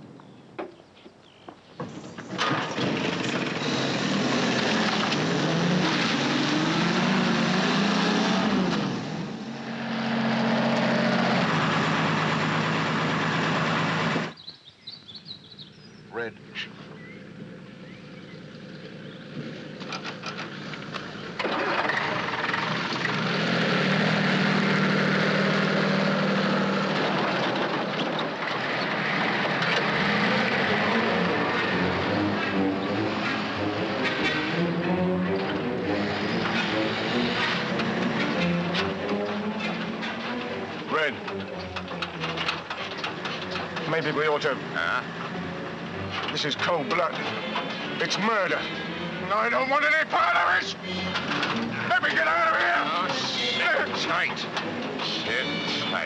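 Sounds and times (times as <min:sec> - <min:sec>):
rattles inside lorry cab: 0:01.8 - 0:06.2, 0:19.0 - 0:23.5, 0:24.8 - 0:56.0
lorry engine running: 0:01.8 - 0:14.4, 0:15.1 - 0:56.0
jeep engine revving: 0:02.3 - 0:14.4, 0:15.5 - 0:56.0.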